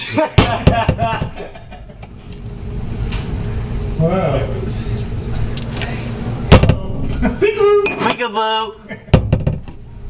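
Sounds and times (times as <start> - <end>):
person laughing: 0.0 - 2.0, 7.0 - 7.8.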